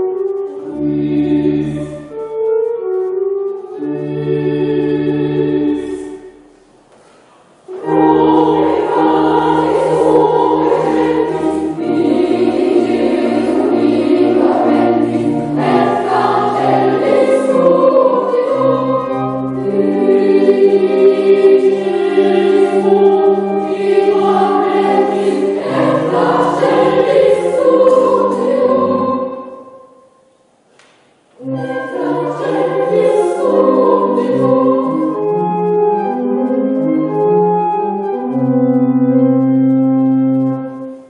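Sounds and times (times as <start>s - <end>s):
children's choir singing: 0.0s - 2.2s, 3.6s - 6.7s, 7.5s - 30.5s, 31.4s - 36.9s
sustained low accompaniment notes: 7.7s - 30.0s.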